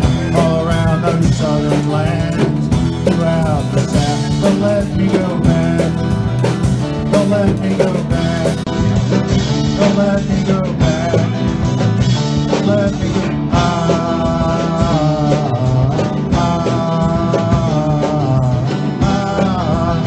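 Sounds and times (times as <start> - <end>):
man singing: 0.0 - 8.8, 9.4 - 20.0
acoustic guitar strumming: 0.0 - 20.0.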